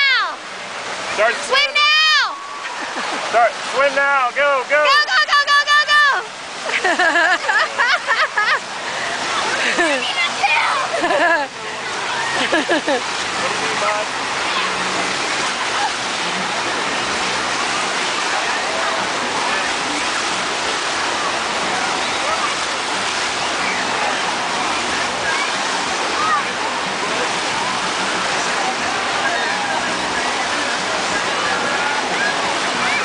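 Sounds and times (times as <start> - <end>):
breaking whitewater rushing: 0.0 - 33.0
faint voices: 7.4 - 33.0.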